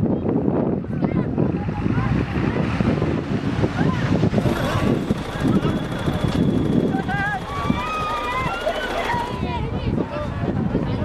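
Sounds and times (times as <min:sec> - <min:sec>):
indistinct voices: 0:03.7 - 0:10.7.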